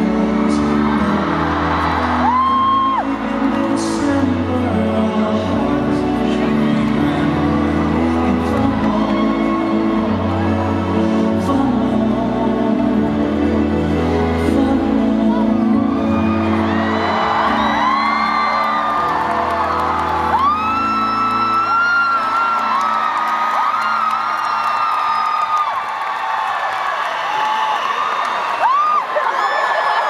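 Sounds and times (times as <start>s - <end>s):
crowd screaming: 0.0s - 11.7s, 15.4s - 30.0s
concert music: 0.0s - 30.0s.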